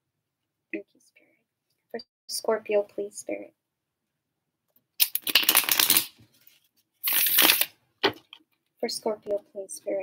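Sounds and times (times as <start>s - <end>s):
cards being shuffled: 5.0s - 8.2s.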